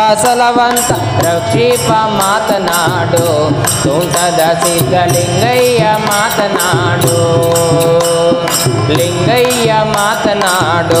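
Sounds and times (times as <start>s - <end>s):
man singing devotional song: 0.0s - 11.0s
tabla beat: 0.0s - 11.0s.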